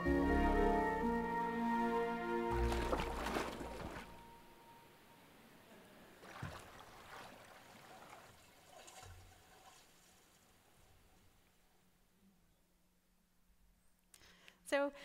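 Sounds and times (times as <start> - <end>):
trickling water: 2.4 - 4.4, 6.2 - 11.6
animal splashing in water: 2.5 - 4.3, 6.2 - 10.1.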